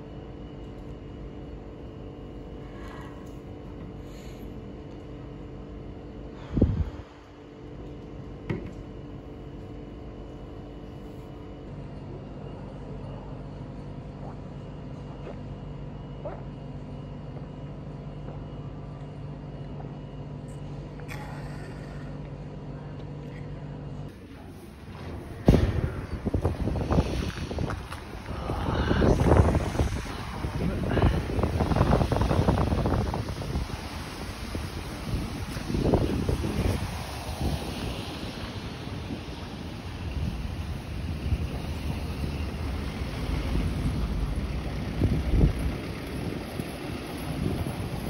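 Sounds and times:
wind buffeting microphone: 0:06.4 - 0:07.3, 0:24.2 - 0:48.0
road traffic: 0:23.9 - 0:48.0.

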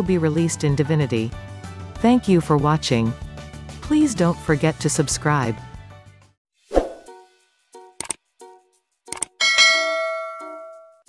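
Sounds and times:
bright bell ding: 0:09.4 - 0:11.0.

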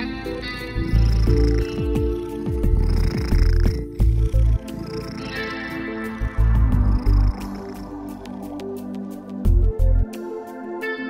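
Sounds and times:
cat purring: 0:00.5 - 0:09.4.

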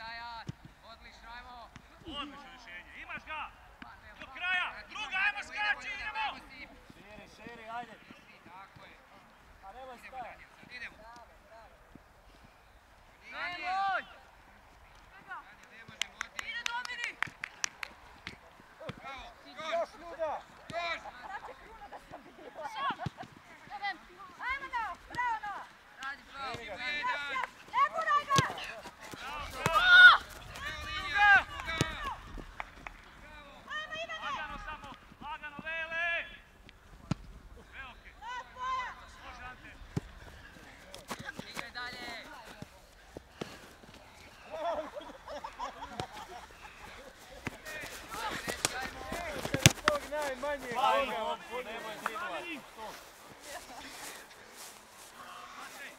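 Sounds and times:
people shouting: 0:27.7 - 0:32.2
ball being kicked: 0:48.2 - 0:50.2.

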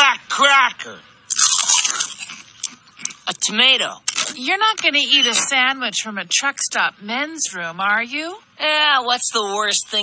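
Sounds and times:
biting into a sandwich: 0:01.3 - 0:03.3
chewing crackling: 0:01.3 - 0:04.4.

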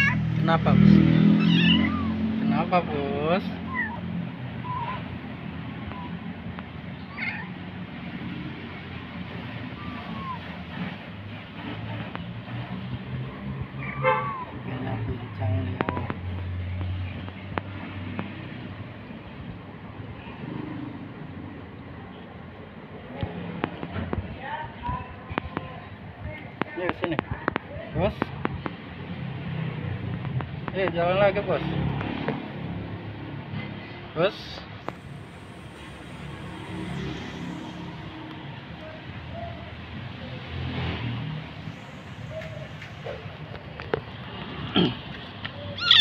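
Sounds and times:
kitten meowing: 0:00.0 - 0:00.2, 0:01.2 - 0:02.5, 0:03.6 - 0:05.2, 0:07.0 - 0:07.6, 0:09.7 - 0:10.6, 0:45.8 - 0:46.0.

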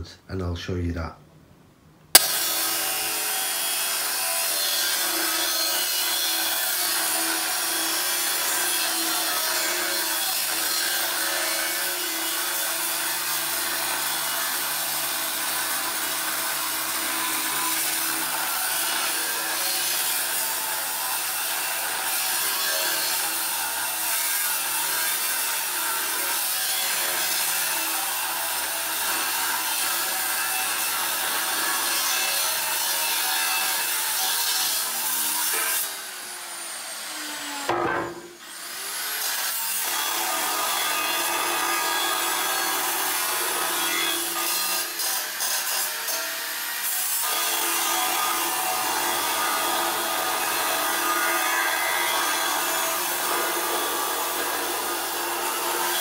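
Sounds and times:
angle grinder cutting steel: 0:02.2 - 0:56.0.

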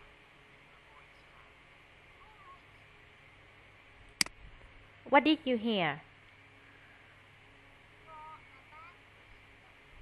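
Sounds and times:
faint voice speaking: 0:00.7 - 0:02.8.

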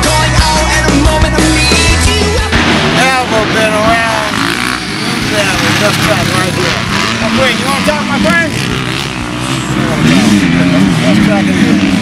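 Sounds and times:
dirt bike engines running: 0:00.0 - 0:12.0
man talking: 0:03.0 - 0:08.6, 0:09.8 - 0:11.9.

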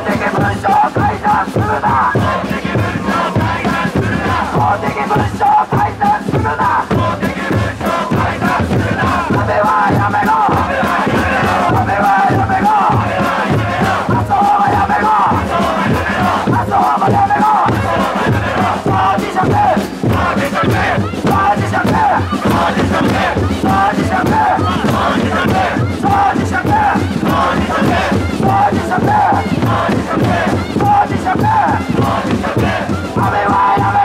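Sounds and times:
crowd chanting: 0:00.0 - 0:34.0
hand drums beating: 0:00.0 - 0:34.0.

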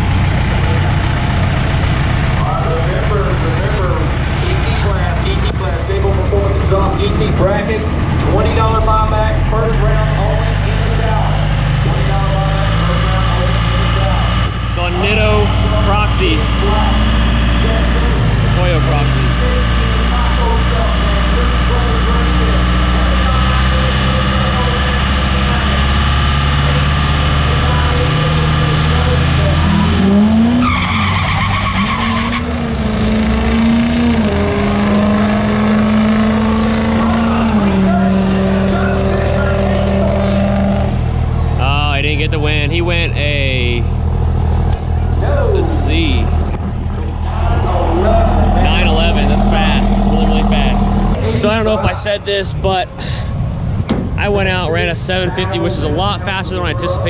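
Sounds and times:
diesel engine running: 0:00.0 - 0:57.0
truck launching and pulling away: 0:00.0 - 0:57.0.

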